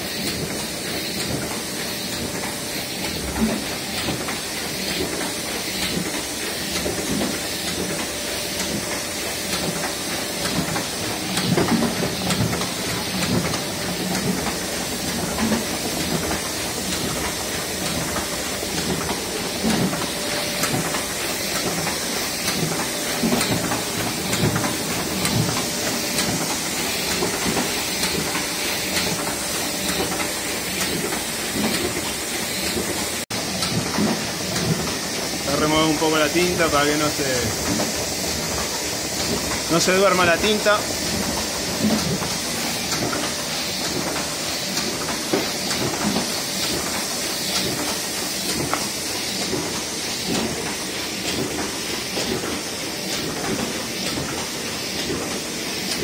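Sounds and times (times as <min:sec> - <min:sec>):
printing press running: 0:00.0 - 0:56.0.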